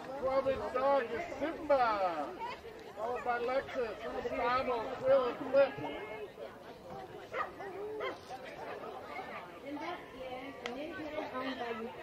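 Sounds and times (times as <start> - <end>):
people talking: 0.0 - 12.0
dog barking: 7.3 - 8.3.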